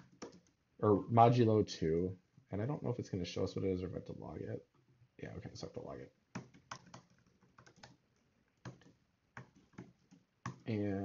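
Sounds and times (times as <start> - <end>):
typing on computer keyboard: 0.0 - 0.6, 6.3 - 10.6.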